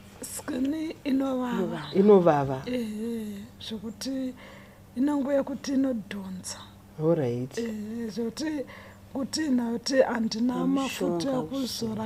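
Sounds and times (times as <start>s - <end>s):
woman talking: 0.2s - 3.8s, 10.0s - 12.0s.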